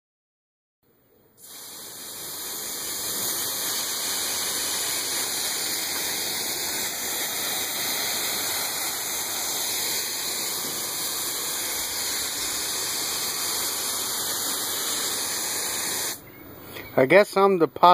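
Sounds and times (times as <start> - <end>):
hose nozzle spraying mist: 1.4 - 16.2.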